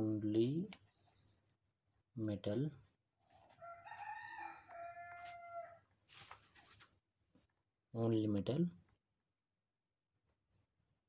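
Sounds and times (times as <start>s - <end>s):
soft rustle: 5.2s - 7.0s.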